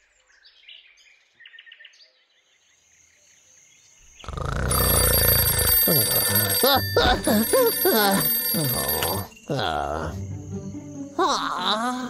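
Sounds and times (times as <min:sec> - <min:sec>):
twin-bell alarm clock ringing: 0:04.7 - 0:09.5.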